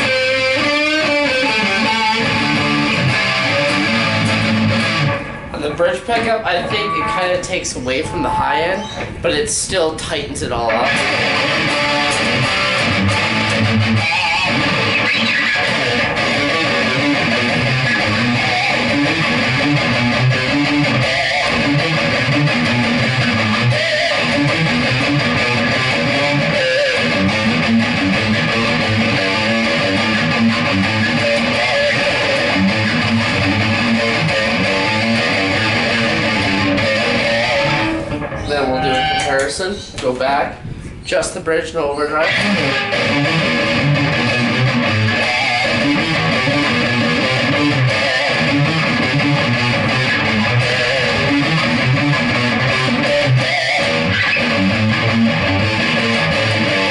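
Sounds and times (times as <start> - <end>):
overdriven electric guitar riffing: 0.0 - 39.7, 42.1 - 56.9.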